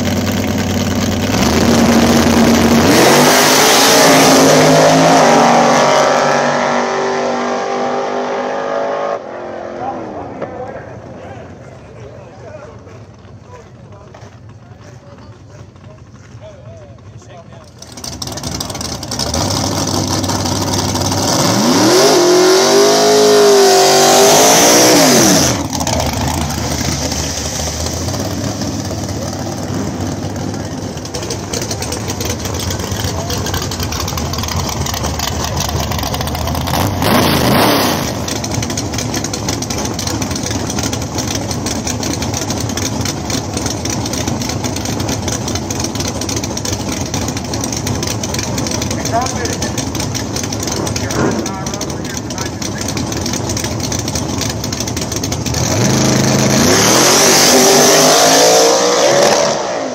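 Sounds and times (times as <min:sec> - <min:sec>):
drag race car engines revving: 0:00.0 - 0:59.9.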